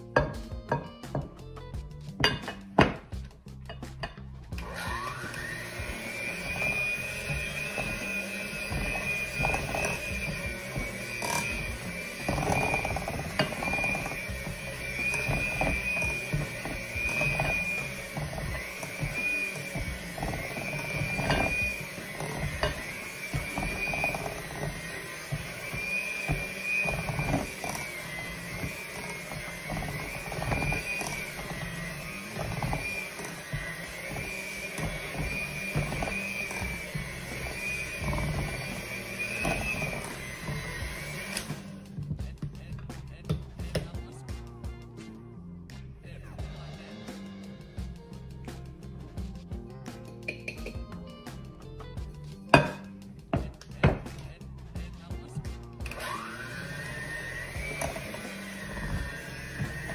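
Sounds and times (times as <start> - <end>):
electric hand mixer whine: 4.4 - 42.1, 51.6 - 54.0, 55.8 - 59.9.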